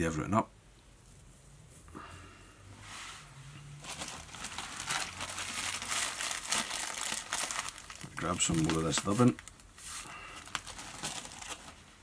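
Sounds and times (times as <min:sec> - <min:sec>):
plastic bag crinkling: 0:03.8 - 0:12.0.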